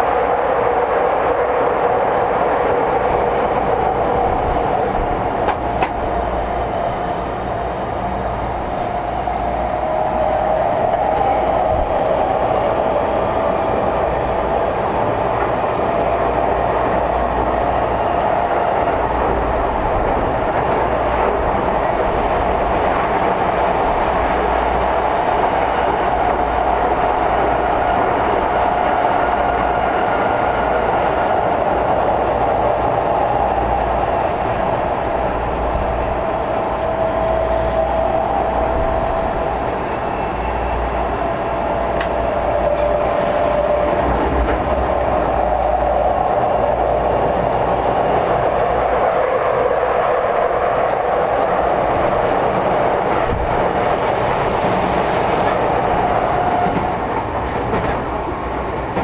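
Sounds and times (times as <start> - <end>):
electric train whine: 0.0 - 59.0
wheels rumbling on rail: 0.0 - 59.0.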